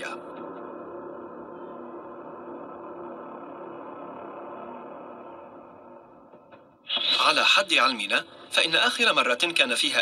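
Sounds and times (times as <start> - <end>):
sound design drone: 0.0 - 8.6.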